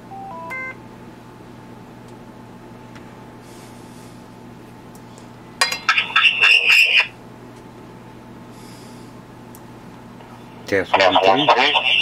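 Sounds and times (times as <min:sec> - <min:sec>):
radio electronic tones and chirps: 0:05.9 - 0:07.1, 0:10.9 - 0:12.0.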